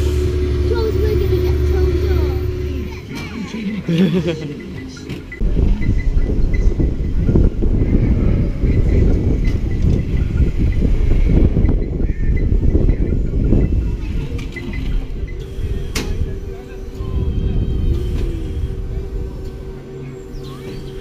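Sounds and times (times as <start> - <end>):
wind buffeting microphone: 5.4 - 20.4.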